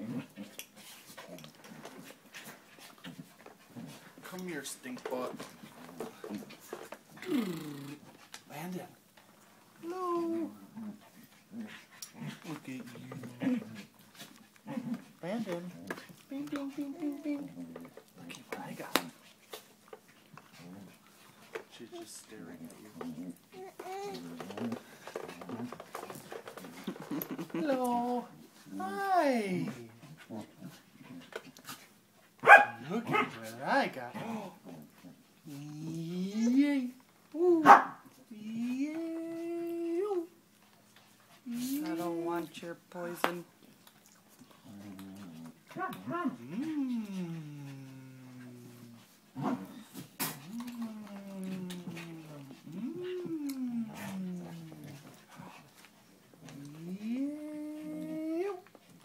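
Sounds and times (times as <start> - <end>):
dog barking and yowling: 32.4 - 33.4, 37.6 - 38.0.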